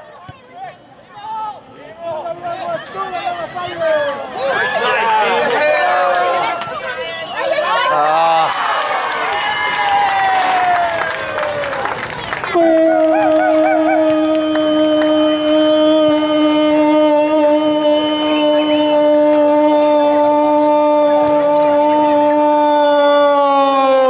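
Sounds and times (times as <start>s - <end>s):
spectators yelling and cheering: 0.0s - 24.0s.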